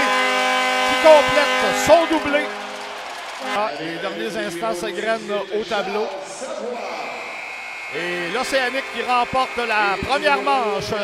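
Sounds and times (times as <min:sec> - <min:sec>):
buzzer steady high tone: 0:00.0 - 0:02.7, 0:07.2 - 0:11.0
crowd noise: 0:00.0 - 0:11.0.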